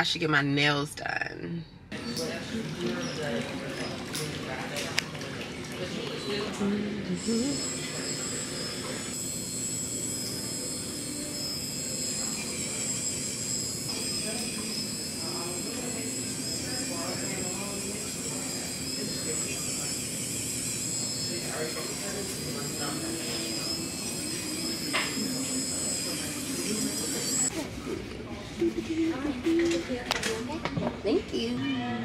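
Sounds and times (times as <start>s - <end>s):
small electric motor whining: 5.9s - 27.5s
voices murmuring: 9.9s - 30.5s.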